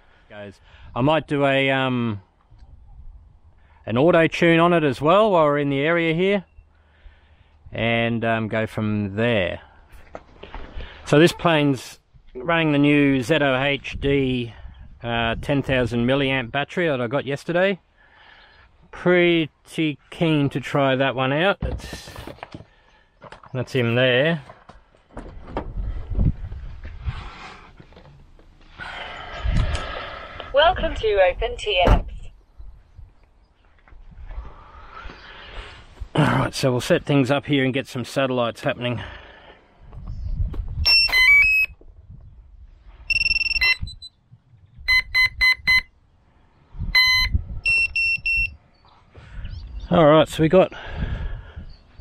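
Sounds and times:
wind on microphone: 0:02.5 - 0:03.6, 0:13.7 - 0:15.9, 0:25.2 - 0:27.4, 0:29.2 - 0:33.2, 0:39.8 - 0:45.9, 0:46.6 - 0:48.6, 0:50.8 - 0:52.0
electronic power-up beeps: 0:40.9 - 0:41.7, 0:43.1 - 0:44.1.

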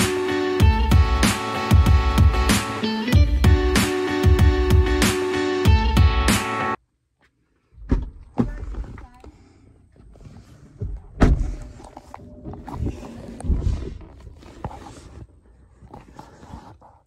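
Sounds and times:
camera handling bumps and rubs: 0:11.6 - 0:17.0.

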